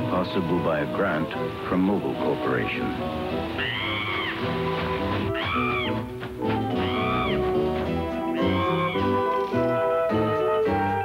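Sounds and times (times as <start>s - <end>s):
orchestral theme music: 0.0s - 11.0s
cry-like call: 3.5s - 6.0s, 6.7s - 7.6s, 8.3s - 9.7s.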